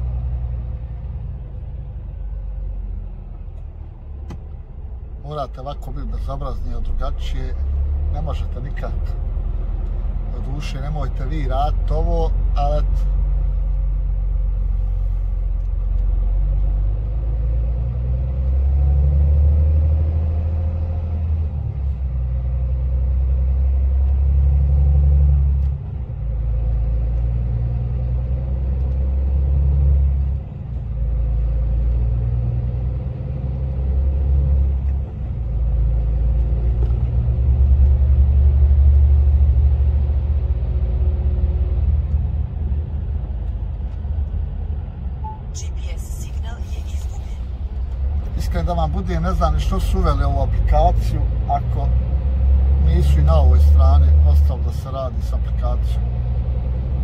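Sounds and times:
truck engine and tyres rumbling: 0.0s - 57.0s.

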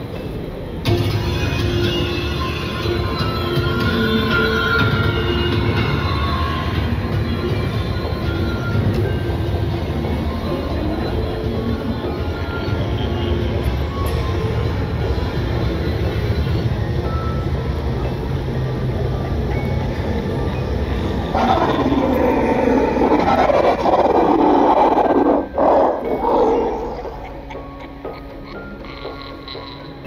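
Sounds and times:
music with low drone: 0.0s - 30.0s
loud rushing noise: 21.3s - 26.8s.

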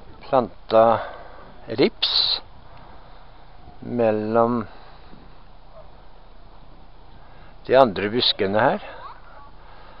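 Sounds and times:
faint outdoor background: 0.0s - 10.0s
man speaking: 1.7s - 2.5s, 7.7s - 9.5s.

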